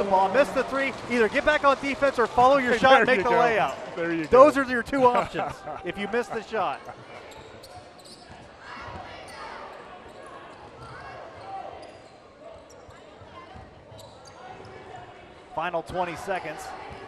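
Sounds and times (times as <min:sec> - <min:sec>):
murmur of crowd voices: 0:00.0 - 0:17.0.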